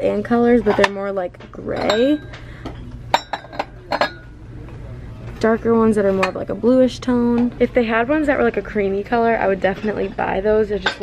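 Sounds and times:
ceramic mugs clinking: 0:01.7 - 0:04.4, 0:10.8 - 0:11.0.

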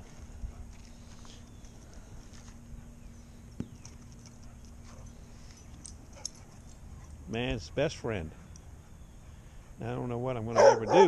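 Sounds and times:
faint footsteps: 0:00.0 - 0:07.2
steady low hum: 0:00.0 - 0:11.0.

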